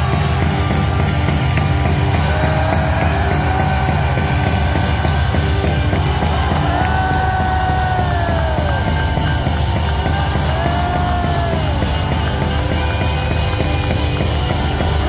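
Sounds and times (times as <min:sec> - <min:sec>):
live band playing noisy music: 0:00.0 - 0:15.0.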